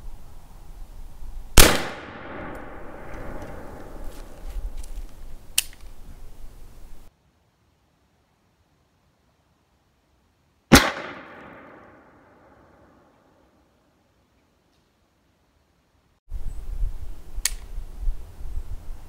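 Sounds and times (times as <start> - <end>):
musket shot echoing: 1.6 - 4.0, 10.7 - 12.9.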